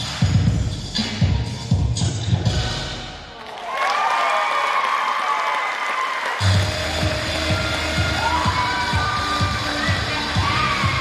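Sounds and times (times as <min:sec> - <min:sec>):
dance music: 0:00.0 - 0:03.4, 0:06.2 - 0:11.0
drum beat: 0:06.4 - 0:11.0.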